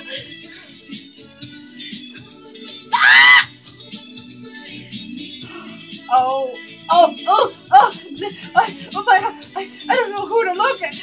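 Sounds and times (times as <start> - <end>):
song playing quietly: 0.0 - 11.0.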